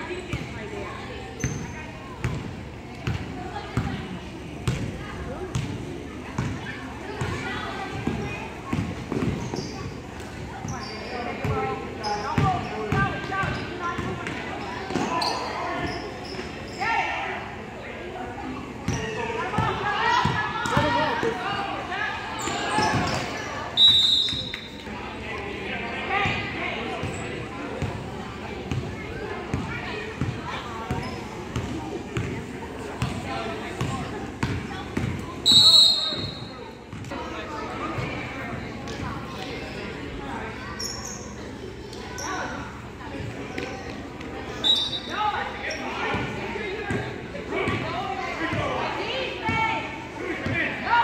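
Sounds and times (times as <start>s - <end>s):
referee's whistle: 23.8s - 24.8s, 35.4s - 36.5s, 44.6s - 45.1s.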